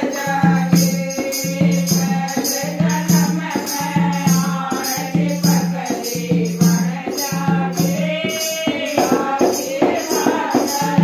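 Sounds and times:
hand drum beat: 0:00.0 - 0:11.0
women singing in unison: 0:00.0 - 0:11.0.

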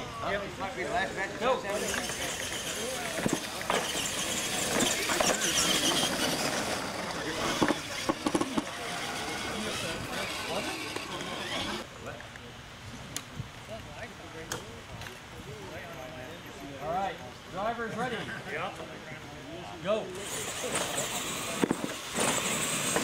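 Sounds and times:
toy truck motors whining: 0:01.6 - 0:11.9, 0:20.1 - 0:23.0.

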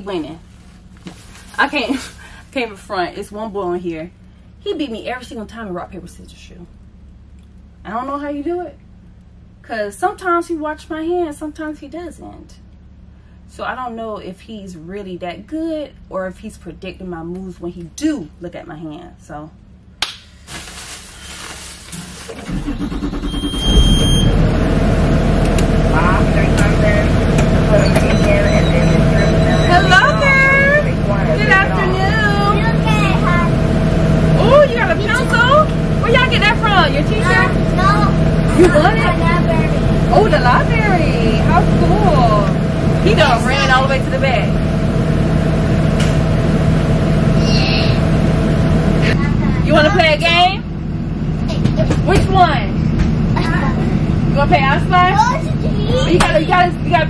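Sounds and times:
bus engine idling: 0:00.0 - 0:57.0
children calling and chattering: 0:31.5 - 0:41.0, 0:47.3 - 0:48.0, 0:49.0 - 0:50.6, 0:54.8 - 0:57.0.

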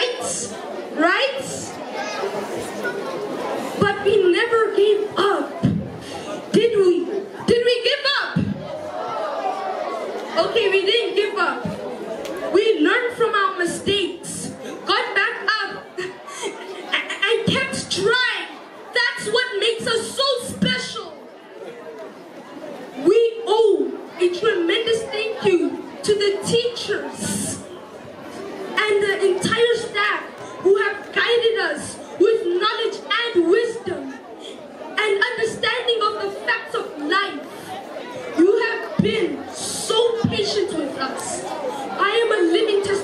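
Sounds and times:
people talking: 0:00.0 - 0:03.2, 0:03.8 - 0:09.6, 0:10.3 - 0:21.2, 0:23.0 - 0:43.0
faint background chatter: 0:00.0 - 0:43.0.

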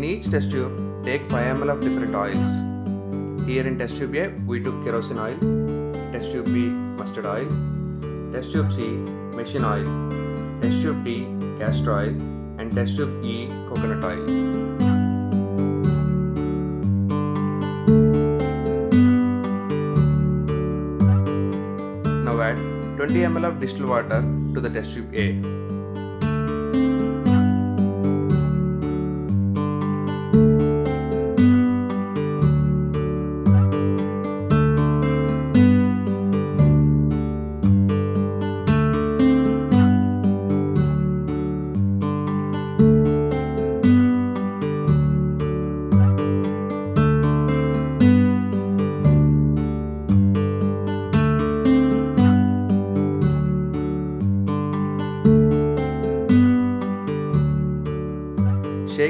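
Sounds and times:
acoustic guitar plucking: 0:00.0 - 0:59.0.

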